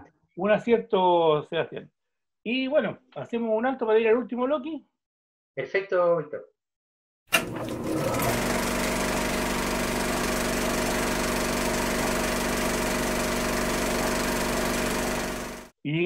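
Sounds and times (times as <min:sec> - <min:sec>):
motor running with clatter: 0:07.4 - 0:15.7.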